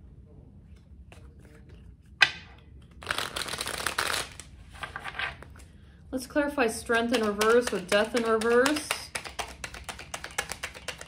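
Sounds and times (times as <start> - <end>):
cards being shuffled: 2.2 - 5.7, 7.1 - 11.0.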